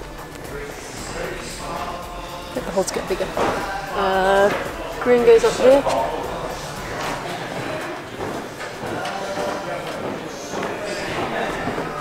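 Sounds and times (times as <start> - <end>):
murmur of echoing voices: 0.0 - 12.0.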